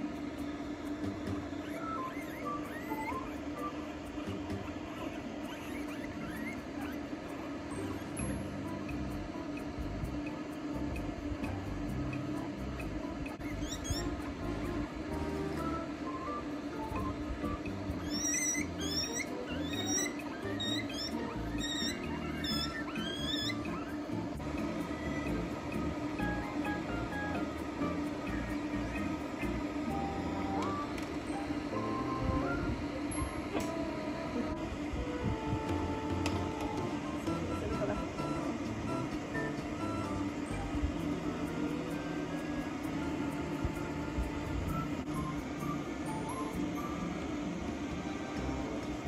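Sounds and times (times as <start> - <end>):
guinea pig squealing: 1.2 - 9.7, 10.9 - 33.6
blow dryer running: 6.1 - 49.0
background music: 7.8 - 49.0.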